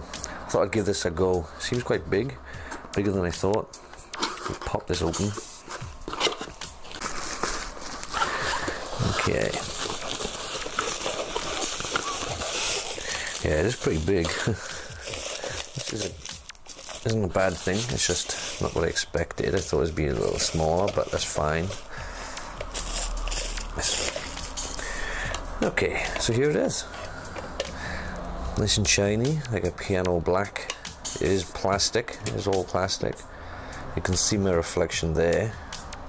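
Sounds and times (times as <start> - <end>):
cardboard rustling and scraping: 4.2 - 27.6.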